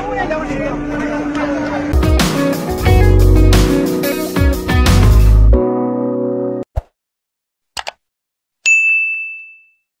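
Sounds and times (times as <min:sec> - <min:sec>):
notification bell ding: 0:08.7 - 0:09.9.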